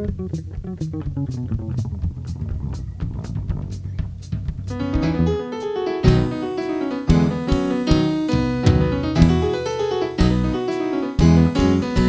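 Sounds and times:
electric bass solo: 0.0s - 12.0s
drums with cymbal strokes: 0.2s - 12.0s
stage piano chords: 4.7s - 12.0s.

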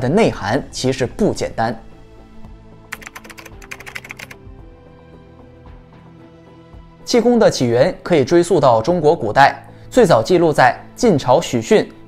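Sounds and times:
soft background music: 0.0s - 12.0s
keyboard typing clicks: 2.9s - 4.4s.

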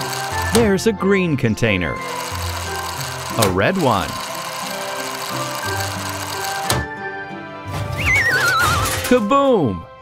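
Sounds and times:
crane motor humming: 0.0s - 0.6s, 2.1s - 6.9s
background music: 0.0s - 10.0s.

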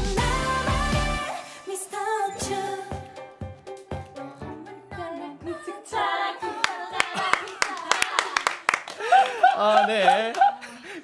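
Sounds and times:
people clapping: 6.6s - 11.0s.

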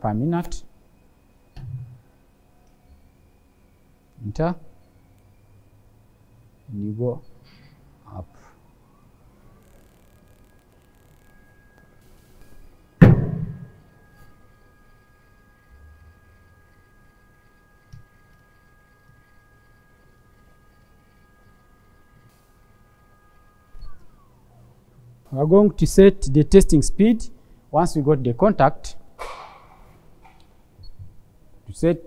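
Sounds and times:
electric motor whining: 8.8s - 25.4s
loud thump: 13.0s - 13.8s.

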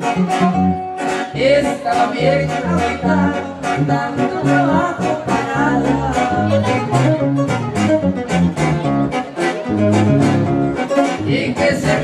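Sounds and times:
live band playing instrumental: 0.0s - 12.0s.

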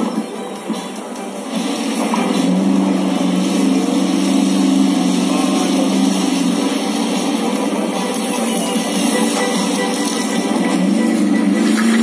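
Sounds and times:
low engine-like drone: 0.0s - 12.0s.

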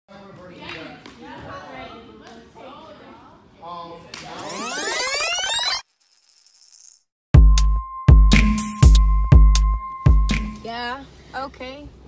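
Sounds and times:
rising sweep sound effect: 4.3s - 5.8s
deep bass beat: 7.4s - 10.6s.

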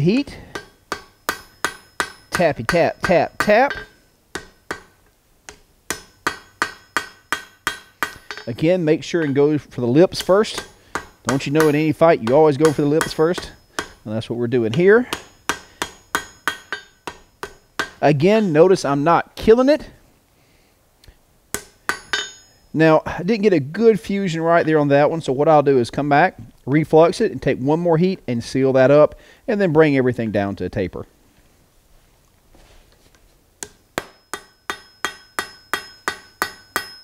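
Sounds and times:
hammer tapping steel on anvil: 0.2s - 14.1s, 14.7s - 18.8s, 21.6s - 22.8s, 33.6s - 37.0s.

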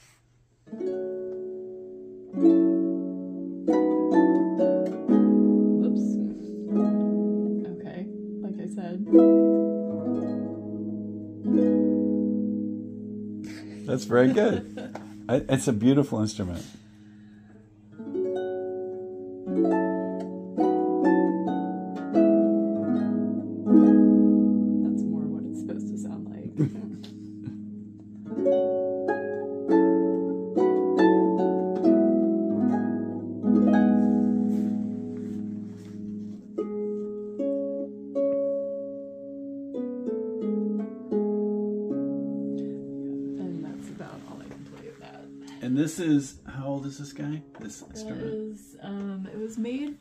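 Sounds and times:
harp played slowly: 0.0s - 48.6s.

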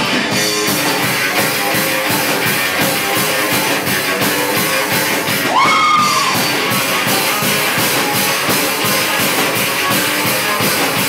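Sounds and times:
amplified electric guitar: 0.0s - 11.0s
fast drum-kit beat: 0.0s - 11.0s.

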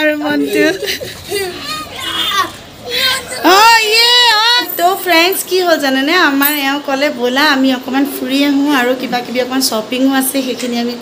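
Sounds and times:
small child crying out: 1.3s - 3.5s.

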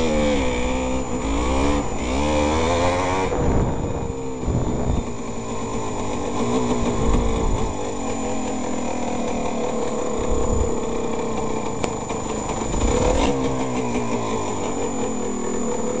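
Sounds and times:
two-stroke motorcycle engine running: 0.0s - 16.0s.

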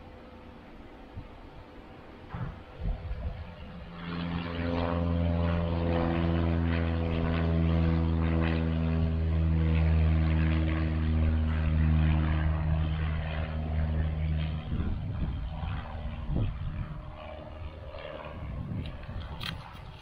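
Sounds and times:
propeller airplane engine drone: 0.0s - 20.0s.

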